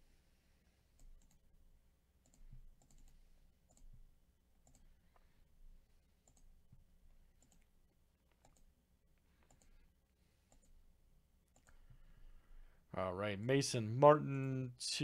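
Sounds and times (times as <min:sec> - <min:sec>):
computer mouse clicks: 0:01.0 - 0:01.4, 0:02.2 - 0:04.0, 0:04.6 - 0:05.3, 0:06.2 - 0:06.6, 0:07.3 - 0:09.8, 0:10.4 - 0:10.8, 0:11.5 - 0:12.0.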